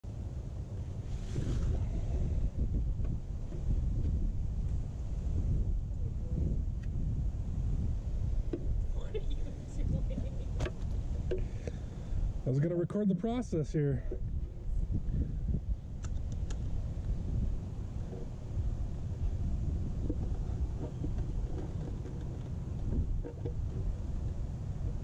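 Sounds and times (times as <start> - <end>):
wind buffeting microphone: 0.0 - 12.6, 13.2 - 25.0.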